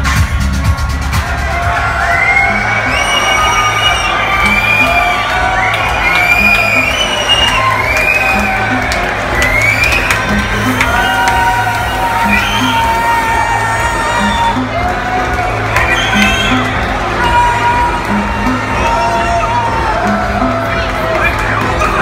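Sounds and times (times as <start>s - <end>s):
techno over sound system: 0.0s - 22.0s
crowd whooping and cheering: 0.4s - 22.0s.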